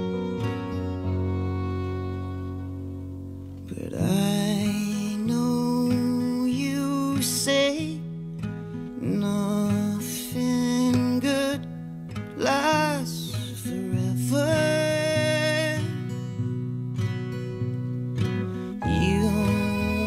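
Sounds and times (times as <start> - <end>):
strummed acoustic guitar: 0.0 - 20.0.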